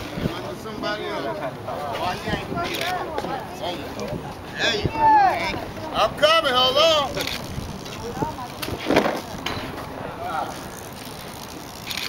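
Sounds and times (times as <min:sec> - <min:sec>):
people talking nearby: 0:00.0 - 0:11.8
outdoor noise: 0:00.0 - 0:12.0.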